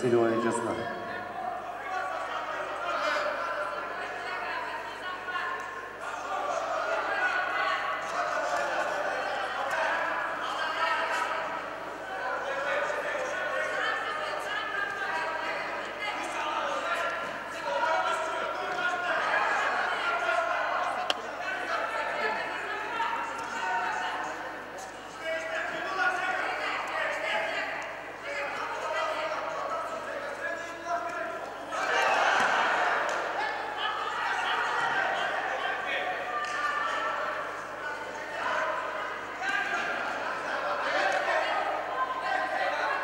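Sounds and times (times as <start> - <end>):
crowd talking and calling out: 0.0 - 43.0
voices in echoing hall: 0.0 - 43.0.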